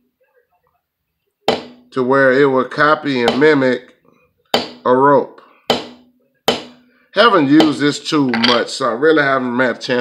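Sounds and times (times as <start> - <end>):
sharp knock: 1.5 - 1.9.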